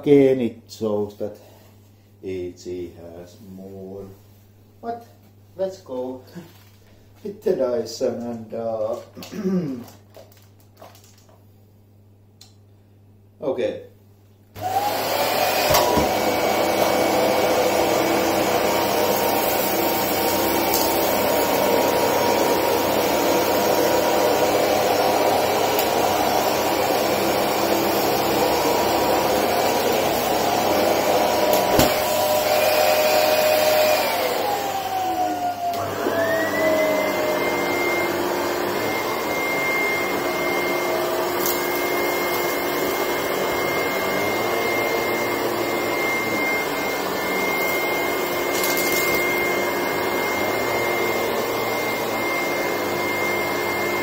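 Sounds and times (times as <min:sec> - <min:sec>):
upright vacuum cleaner running: 0:14.6 - 0:54.0
vacuum cleaner high-pitched whine: 0:14.6 - 0:54.0
vacuum motor winding down: 0:14.6 - 0:54.0.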